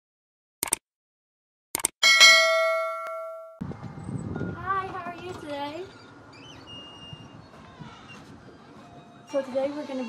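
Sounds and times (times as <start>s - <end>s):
bell chime: 2.0s - 3.6s
outdoor background noise: 2.0s - 10.0s.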